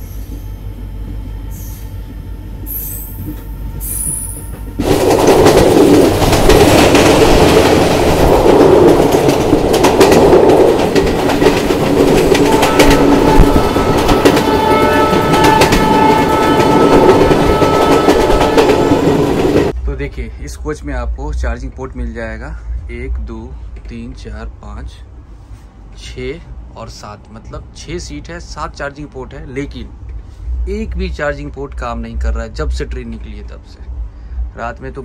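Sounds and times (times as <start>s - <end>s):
train wheels on rails: 0.0s - 19.8s
wind rushing: 4.7s - 19.7s.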